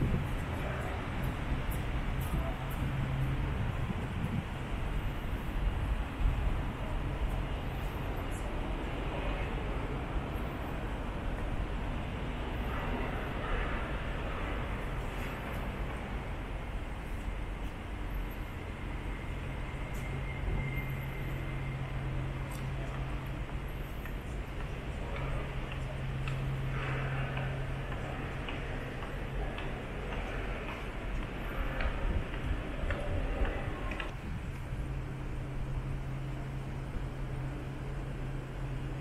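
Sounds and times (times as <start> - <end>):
city background hum: 0.0 - 39.0
low rumble of traffic: 0.0 - 39.0.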